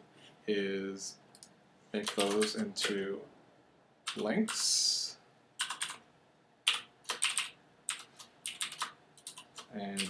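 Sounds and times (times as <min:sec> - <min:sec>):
typing on computer keyboard: 0:01.4 - 0:03.0, 0:05.6 - 0:06.0, 0:06.7 - 0:10.0.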